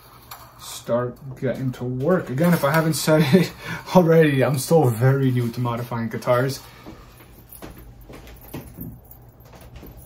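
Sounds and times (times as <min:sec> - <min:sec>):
light knocks and rustles: 0:06.9 - 0:10.0.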